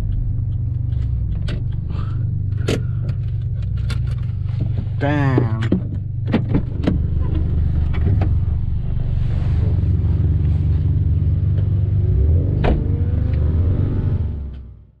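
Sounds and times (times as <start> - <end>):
car engine idling: 0.0 - 13.4.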